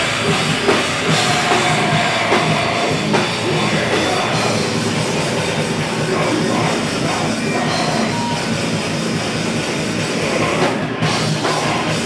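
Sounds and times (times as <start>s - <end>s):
loud live band: 0.0s - 12.0s.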